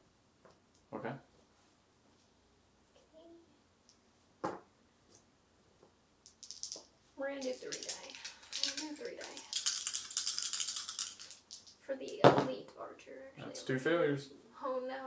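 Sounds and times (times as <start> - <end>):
dice rattling: 6.2 - 12.4
dice clattering on mat: 6.2 - 12.5.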